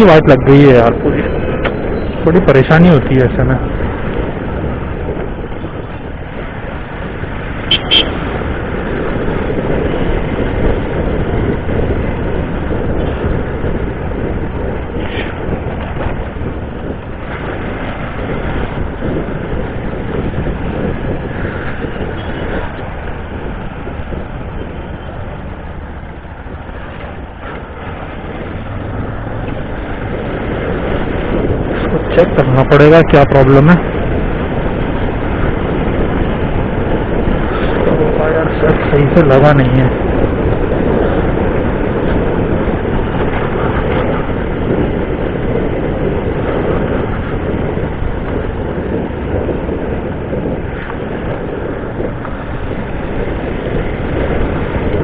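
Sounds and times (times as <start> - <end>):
road and wind noise: 0.0 - 55.0.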